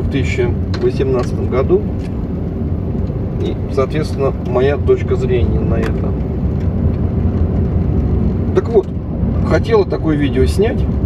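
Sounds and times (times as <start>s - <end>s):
car engine running: 0.0s - 11.0s
tyres on gravel road: 0.0s - 11.0s.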